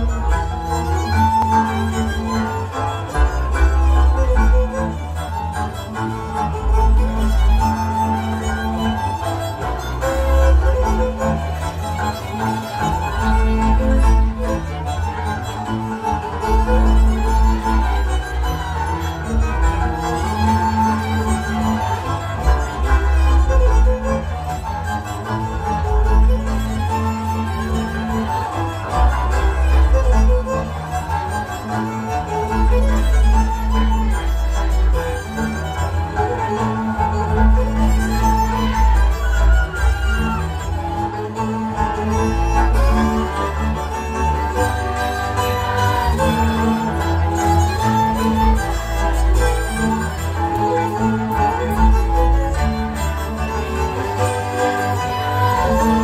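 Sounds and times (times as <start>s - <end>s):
folk dance music led by fiddle: 0.0s - 56.0s
steady bass: 0.0s - 56.0s.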